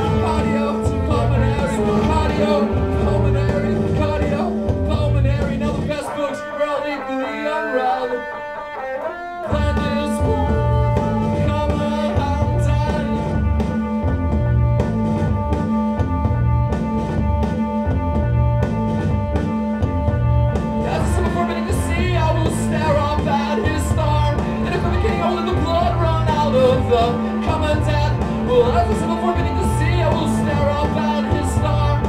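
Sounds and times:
gliding pitched guitar lines: 0.0 - 32.0
rock band playing instrumental: 0.0 - 32.0.

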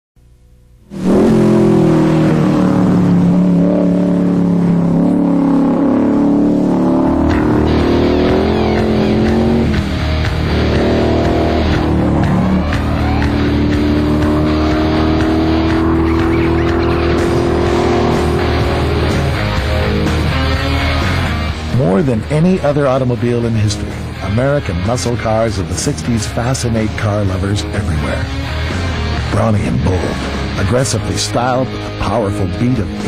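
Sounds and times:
race car engine revving: 0.9 - 33.0
rock music: 0.9 - 33.0.

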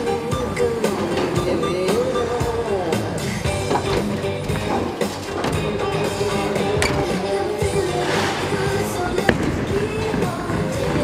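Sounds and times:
background music: 0.0 - 11.0
bowling alley din: 0.0 - 11.0.

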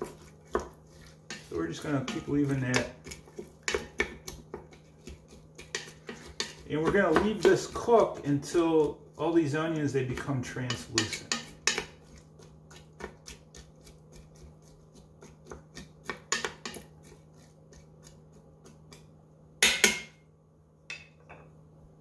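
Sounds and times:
spatula scraping metal pot: 0.0 - 15.6.

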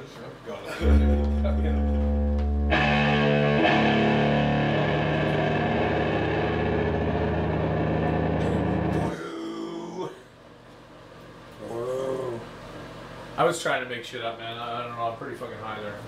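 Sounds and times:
deep bass notes: 0.8 - 9.1
distorted electric guitar chord: 0.8 - 9.1.

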